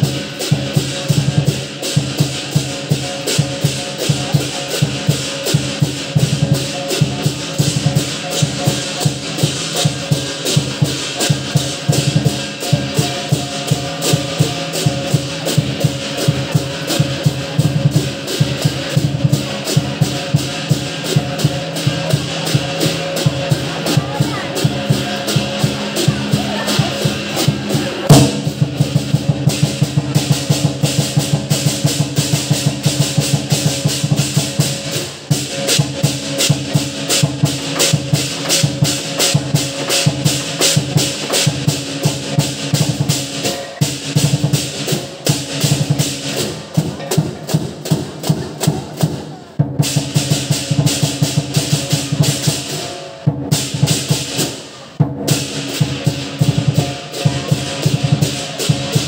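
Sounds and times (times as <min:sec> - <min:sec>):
clashing cymbals: 0:00.0 - 0:59.0
drum beaten fast: 0:00.0 - 0:59.0.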